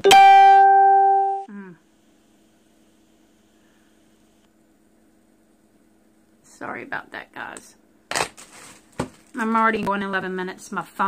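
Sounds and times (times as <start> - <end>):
phone single tone: 0.0 - 1.5
faint steady hum: 0.0 - 11.0.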